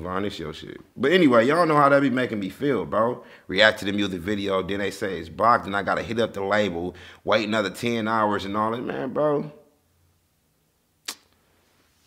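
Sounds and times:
short sharp click: 0:11.1 - 0:11.4.

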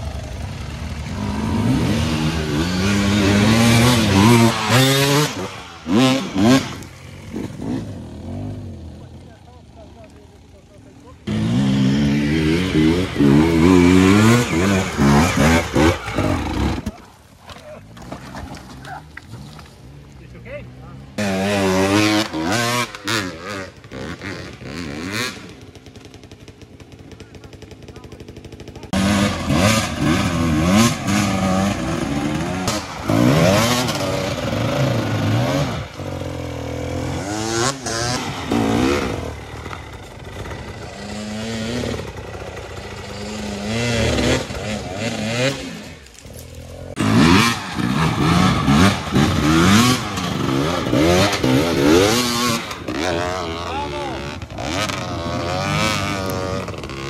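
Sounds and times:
dirt bike engine revving: 0:00.0 - 0:17.0, 0:17.8 - 0:57.0.

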